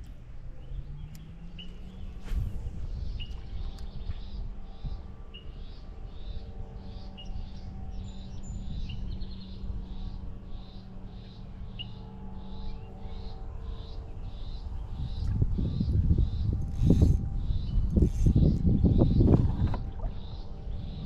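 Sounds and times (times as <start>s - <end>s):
steady low rumble: 0.0s - 21.0s.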